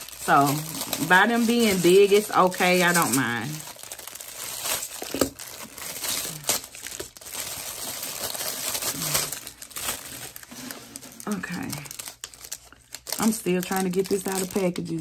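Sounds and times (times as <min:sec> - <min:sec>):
plastic packaging crinkling: 0:00.0 - 0:15.0.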